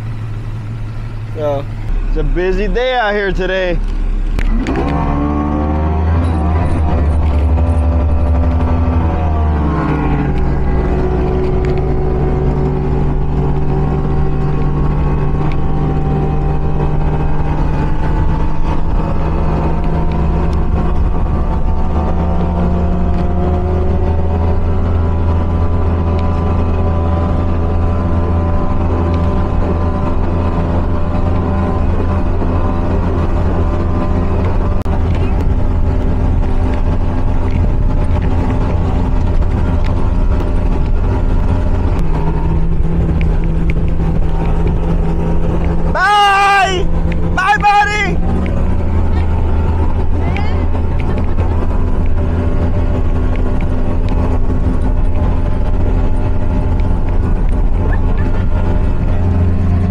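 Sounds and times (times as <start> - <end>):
speedboat engine running: 0.0 - 59.9
wind: 0.0 - 59.9.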